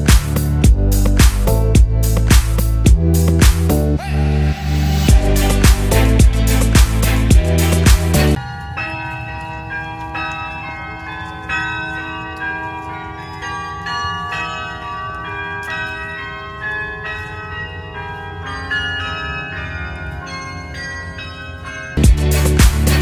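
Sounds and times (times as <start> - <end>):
tower bells ringing: 0.0 - 23.0.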